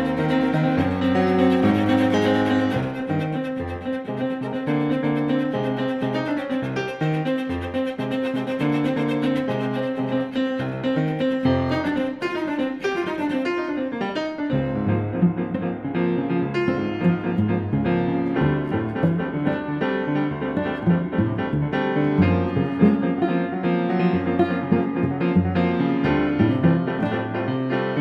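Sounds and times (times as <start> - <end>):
grand piano playing: 0.0 - 28.0.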